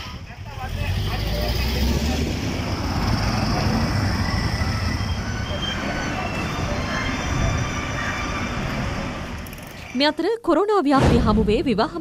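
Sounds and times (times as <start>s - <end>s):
vehicle engines rumbling: 0.0s - 10.1s.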